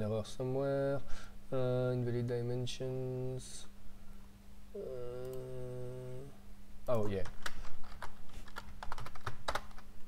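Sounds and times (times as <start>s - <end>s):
man saying oh: 4.8s - 6.4s
man's drawn-out hesitation sound: 4.8s - 7.2s.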